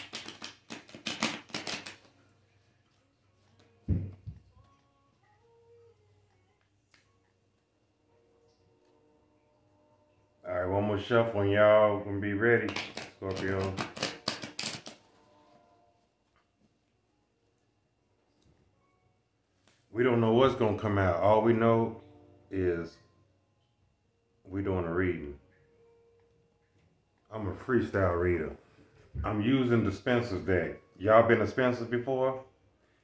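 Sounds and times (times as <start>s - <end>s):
cards being shuffled: 0.0s - 2.2s, 12.6s - 15.1s
thump: 3.9s - 4.4s.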